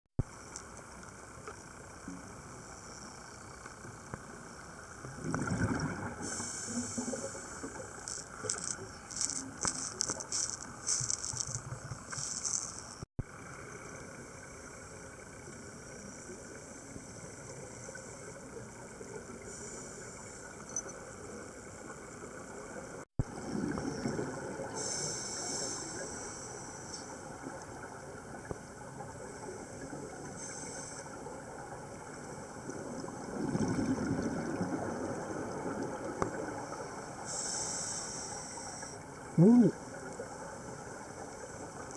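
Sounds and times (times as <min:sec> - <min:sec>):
exhaled bubbles rushing: 0:05.1 - 0:12.6, 0:23.2 - 0:24.9, 0:32.6 - 0:36.7
diver regulator breathing: 0:37.3 - 0:39.7.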